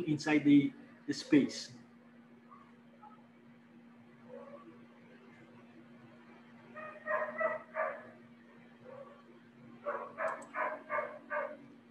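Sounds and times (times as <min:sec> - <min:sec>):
steady low hum: 0:00.0 - 0:11.9
dog barking: 0:02.5 - 0:03.2, 0:04.3 - 0:04.8, 0:06.8 - 0:08.1, 0:08.8 - 0:09.2, 0:09.9 - 0:11.6.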